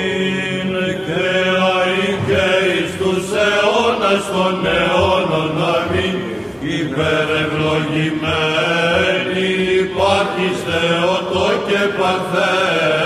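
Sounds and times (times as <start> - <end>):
group chanting melody: 0.0 - 13.0.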